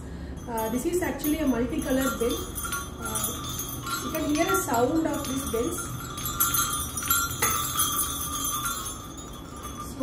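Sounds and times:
small hanging bells ringing: 0:00.2 - 0:10.0.

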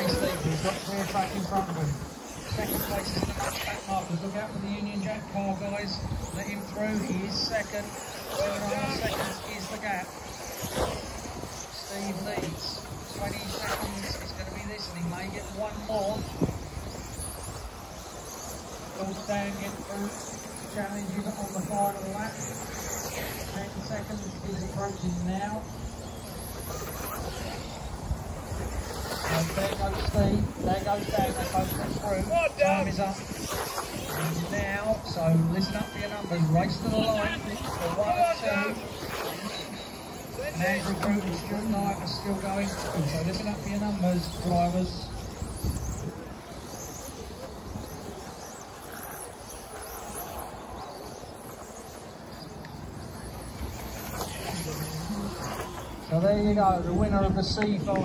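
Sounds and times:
electric model buggies whining: 0:00.0 - 0:57.4
distant voices: 0:00.0 - 0:58.0.

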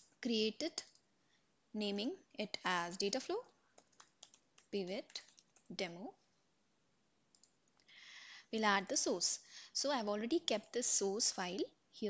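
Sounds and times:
faint computer clicks: 0:03.8 - 0:05.7, 0:07.3 - 0:07.9.

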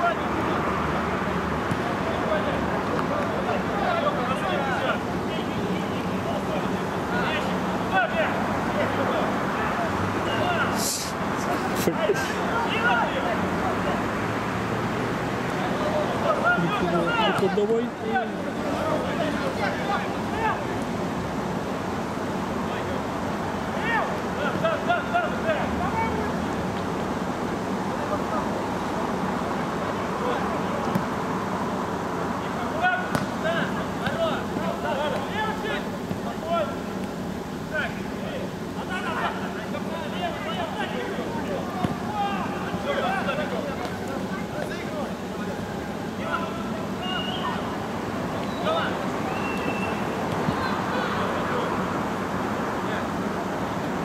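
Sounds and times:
steady background noise: 0:00.0 - 0:54.0
people shouting: 0:41.7 - 0:43.0.

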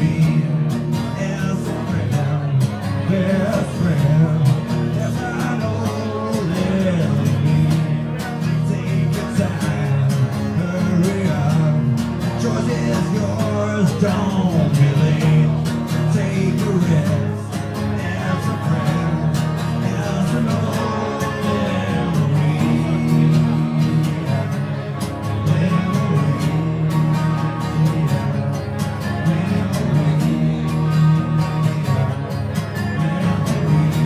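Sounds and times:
person singing: 0:00.0 - 0:34.0
strummed acoustic guitar: 0:00.0 - 0:34.0.

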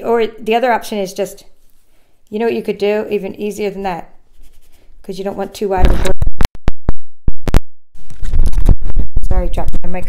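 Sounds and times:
microphone hitting the floor: 0:05.8 - 0:07.6
microphone handling noise: 0:05.8 - 0:10.0.

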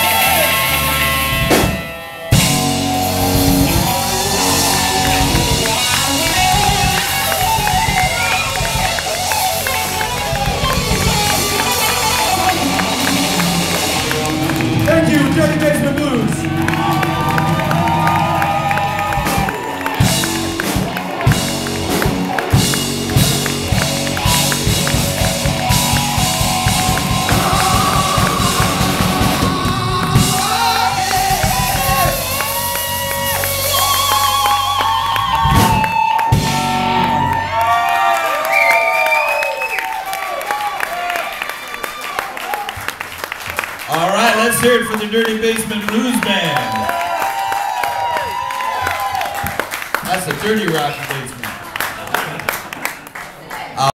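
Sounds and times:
crowd voices and whoops: 0:00.0 - 0:01.2, 0:02.3 - 0:42.9, 0:45.9 - 0:49.8
live blues band: 0:00.0 - 0:53.6
man singing: 0:27.1 - 0:32.4.

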